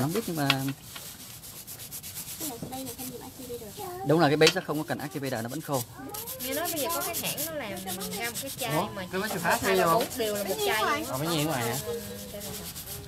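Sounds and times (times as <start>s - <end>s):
nail file rasping: 5.2s - 13.0s.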